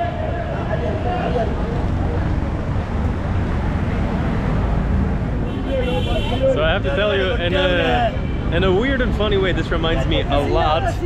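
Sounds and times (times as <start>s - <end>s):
low traffic rumble: 0.0s - 11.0s.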